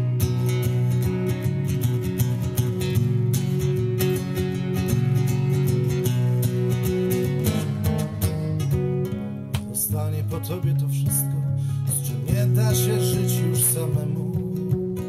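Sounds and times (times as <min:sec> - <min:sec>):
acoustic guitar chords: 0:00.0 - 0:15.0.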